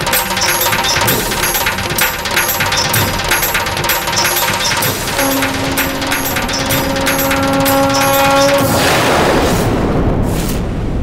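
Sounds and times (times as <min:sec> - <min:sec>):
sharp clicky percussion: 0:00.0 - 0:08.8
dramatic background score: 0:00.0 - 0:10.3.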